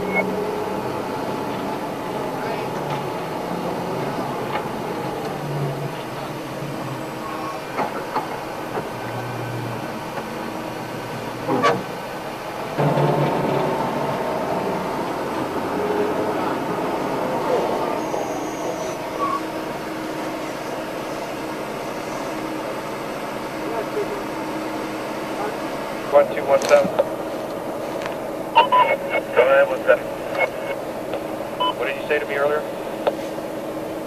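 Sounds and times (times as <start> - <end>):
armoured vehicle rumble and rattle: 0.0 - 34.0.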